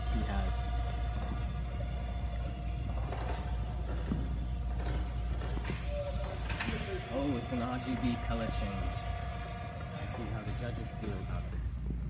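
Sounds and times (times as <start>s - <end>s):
small wheel motors whirring: 0.0s - 11.9s
steady low hum: 0.0s - 12.0s.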